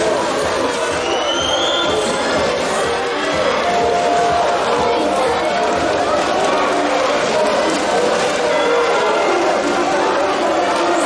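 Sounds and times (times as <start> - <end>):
crowd cheering and chanting: 0.0 - 11.0.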